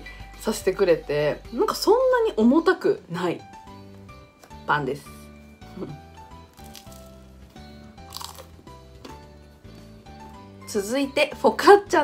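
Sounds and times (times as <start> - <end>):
background music: 0.0 - 12.0
teeth crunching crusty bread: 6.4 - 9.2.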